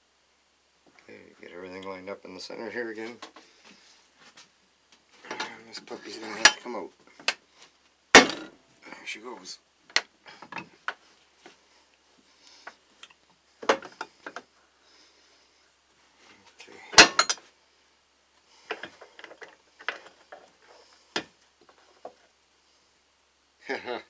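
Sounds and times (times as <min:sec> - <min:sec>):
metal clinks and knocks: 0:17.0 - 0:17.4.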